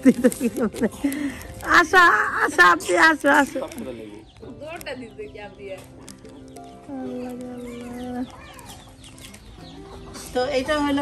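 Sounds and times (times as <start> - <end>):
background music: 0.0 - 11.0
hens clucking: 0.0 - 11.0.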